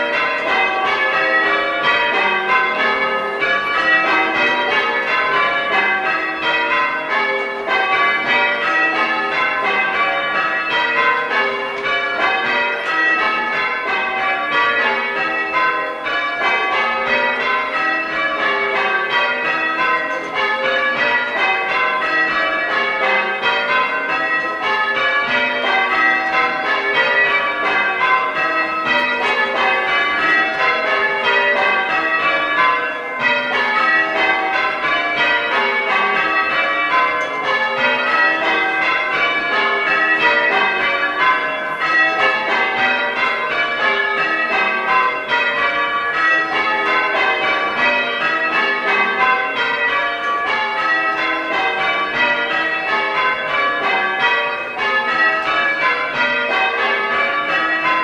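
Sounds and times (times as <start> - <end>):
church bells ringing: 0.0 - 58.0.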